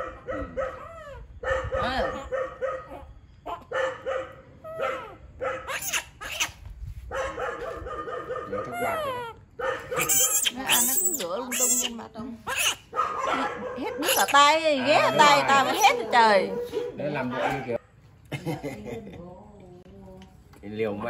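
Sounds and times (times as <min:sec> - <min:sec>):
baby monkey shrill cries: 0:04.6 - 0:06.6, 0:08.7 - 0:13.0, 0:14.0 - 0:16.0
woman's voice: 0:10.5 - 0:12.5, 0:13.2 - 0:16.7.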